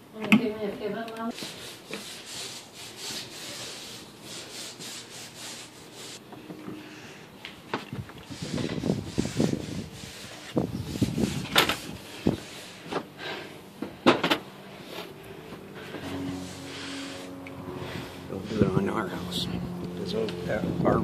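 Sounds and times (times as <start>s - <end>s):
scraping and rubbing: 1.3s - 6.2s, 7.9s - 13.2s, 14.5s - 19.5s.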